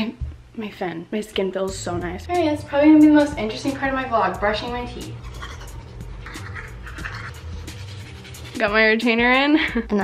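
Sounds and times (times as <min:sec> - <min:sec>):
toothbrush scrubbing teeth: 0:05.0 - 0:09.3.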